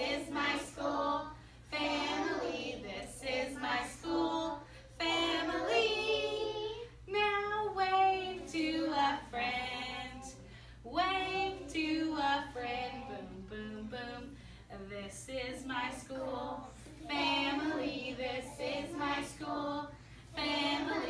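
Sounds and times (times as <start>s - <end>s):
woman and children singing: 0.0s - 21.0s.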